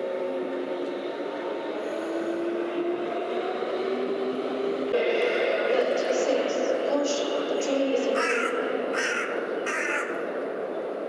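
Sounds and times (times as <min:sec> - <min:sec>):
bird cawing: 0:08.1 - 0:10.3.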